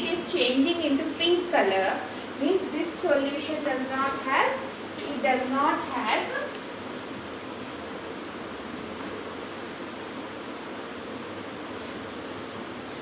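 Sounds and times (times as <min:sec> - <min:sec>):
steady background hiss: 0:00.0 - 0:13.0
marker tip squeak: 0:11.7 - 0:12.1.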